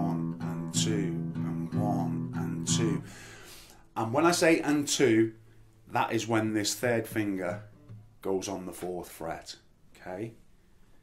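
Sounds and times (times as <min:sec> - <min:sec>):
acoustic guitar strummed blues: 0:00.0 - 0:05.4.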